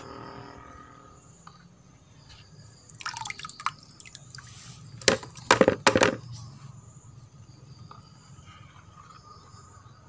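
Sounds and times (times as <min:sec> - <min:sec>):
water dripping and splashing: 0:02.9 - 0:05.5.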